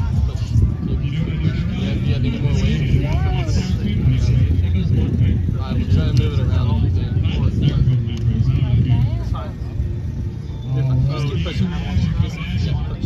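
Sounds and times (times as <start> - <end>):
distant people talking: 0.0 - 13.0.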